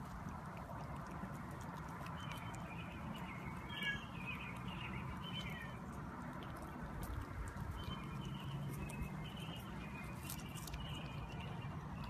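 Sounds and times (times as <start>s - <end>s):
cat chewing clicks: 0.0s - 3.8s, 4.4s - 12.0s.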